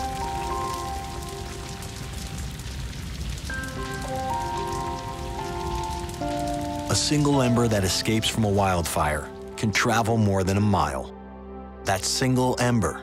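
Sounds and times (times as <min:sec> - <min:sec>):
crackle of burning wood: 0:00.0 - 0:10.9.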